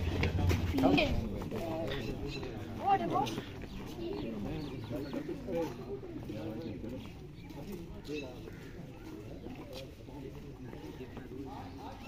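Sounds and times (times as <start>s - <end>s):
men chattering: 0.0s - 12.0s.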